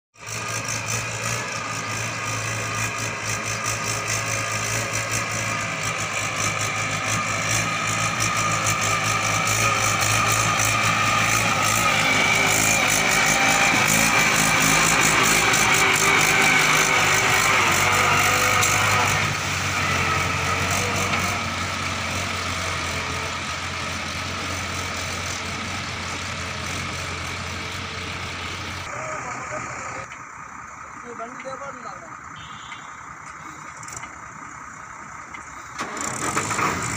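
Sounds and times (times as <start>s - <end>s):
diesel engines droning: 0.2s - 36.9s
tractor working through mud: 0.2s - 36.9s.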